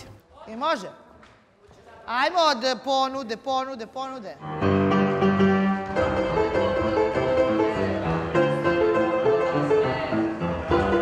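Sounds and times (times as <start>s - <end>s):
upright piano playing: 4.4s - 11.0s.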